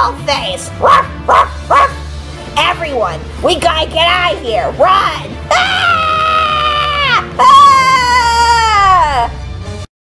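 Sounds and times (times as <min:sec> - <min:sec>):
high-pitched voice screaming: 0:05.5 - 0:09.4.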